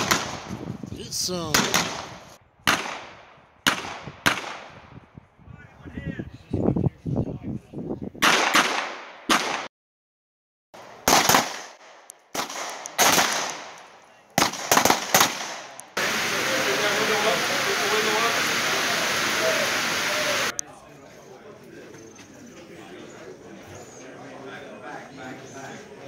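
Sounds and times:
pistol shots with echo: 1.4s - 4.9s, 8.2s - 9.7s, 10.8s - 13.8s, 14.4s - 15.8s
steady hiss: 15.9s - 20.5s.

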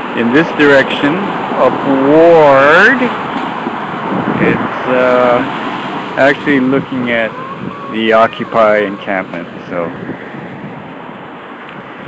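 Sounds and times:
street traffic rushing noise: 0.0s - 12.0s.

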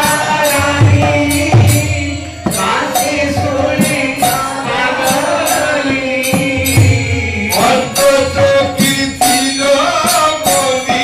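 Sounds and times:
devotional chanting: 0.0s - 11.0s
hand cymbals struck in steady beat: 0.0s - 11.0s.

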